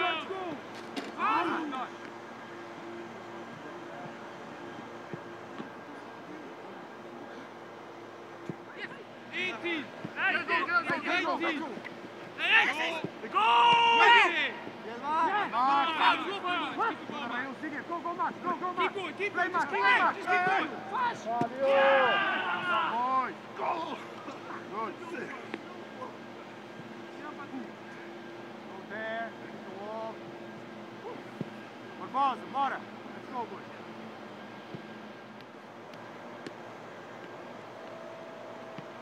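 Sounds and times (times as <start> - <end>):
men shouting: 0.0 - 0.6, 1.2 - 2.0, 12.4 - 17.3, 18.1 - 25.5
players calling: 0.0 - 39.0
steady low hum: 0.0 - 39.0.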